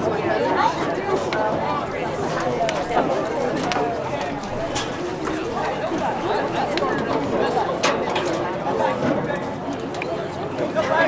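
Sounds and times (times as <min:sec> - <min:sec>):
overlapping voices chatting: 0:00.6 - 0:10.0.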